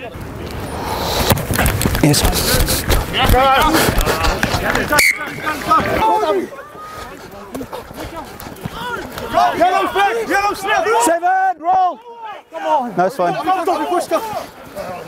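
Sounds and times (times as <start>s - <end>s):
rustling and knocks on microphone: 1.2s - 4.8s
men talking over microphone: 1.9s - 12.0s, 12.6s - 15.0s.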